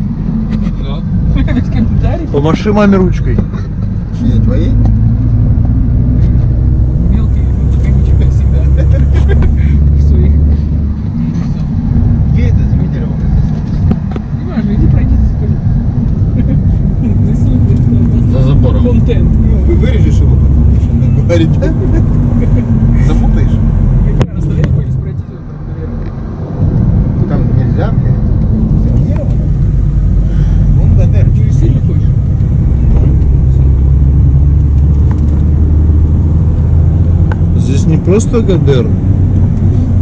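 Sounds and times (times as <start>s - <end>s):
car driving on gravel: 0.0s - 40.0s.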